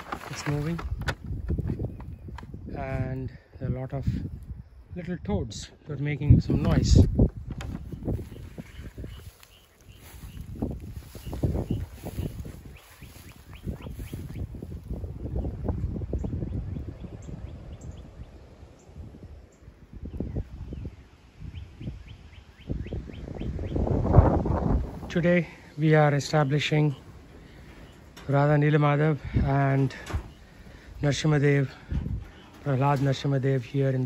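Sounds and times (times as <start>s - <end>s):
wind rumbling on microphone: 0.0s - 34.0s.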